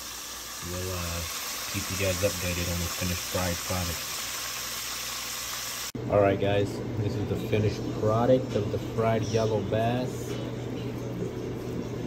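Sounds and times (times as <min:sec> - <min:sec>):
fish deep-frying in hot oil: 0:00.0 - 0:06.0.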